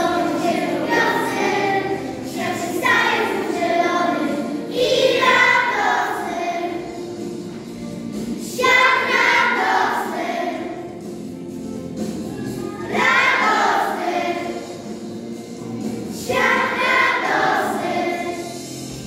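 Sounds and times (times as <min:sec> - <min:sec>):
children's choir singing: 0:00.0 - 0:11.3, 0:12.0 - 0:19.0.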